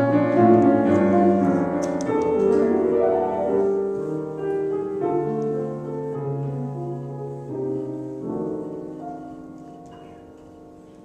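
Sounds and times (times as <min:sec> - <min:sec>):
grand piano playing slow chords: 0:00.0 - 0:11.0.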